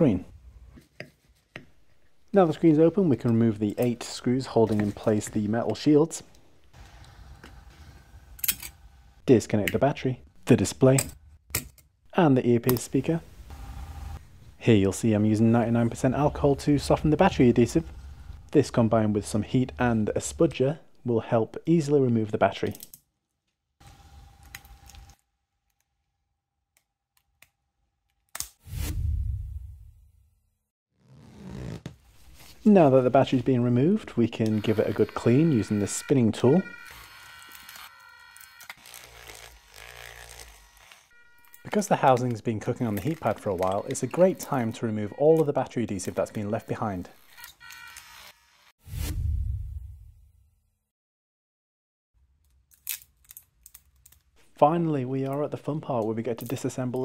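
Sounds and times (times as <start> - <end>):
whoosh into deep boom: 28.7 - 30.2, 48.8 - 50.4.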